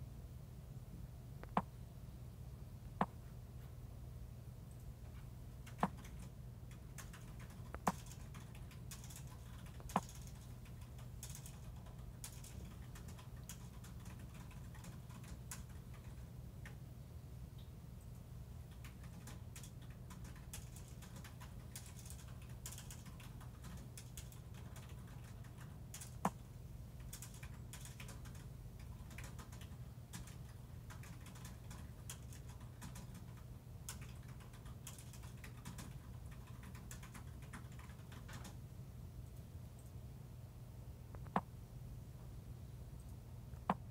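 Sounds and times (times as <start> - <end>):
low steady hum: 0.0 - 43.9.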